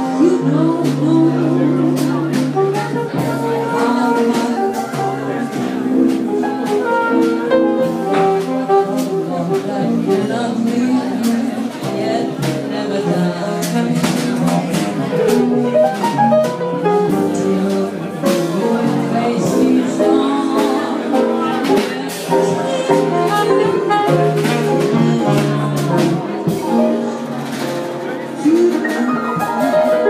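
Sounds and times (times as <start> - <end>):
drum kit with cymbals: 0.0 - 30.0
jazz melodic lead line: 0.0 - 30.0
upright bass: 0.0 - 30.0.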